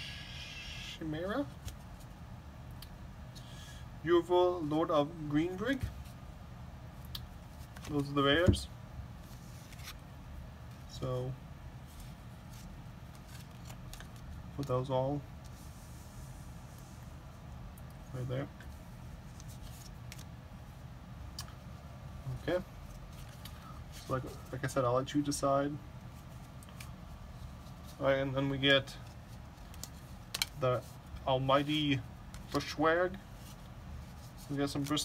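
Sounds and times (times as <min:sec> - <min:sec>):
low steady hum: 0:00.0 - 0:35.0
soft clicks of paper cards: 0:26.5 - 0:27.0, 0:29.0 - 0:31.2.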